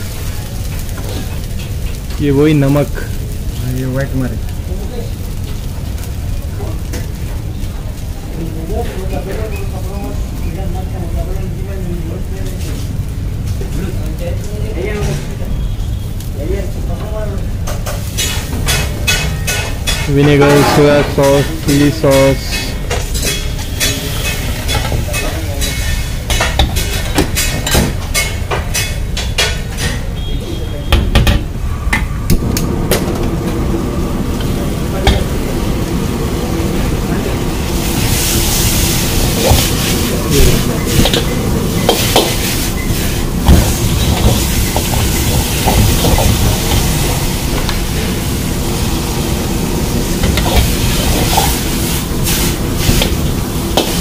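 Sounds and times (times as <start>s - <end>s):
noodles sizzling in a wok: 0.0s - 30.7s, 33.6s - 54.0s
gas burner roaring and frying hiss: 0.0s - 54.0s.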